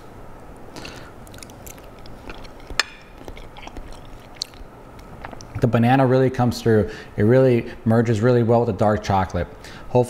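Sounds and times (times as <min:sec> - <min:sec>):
soft chewing: 0:00.6 - 0:05.6.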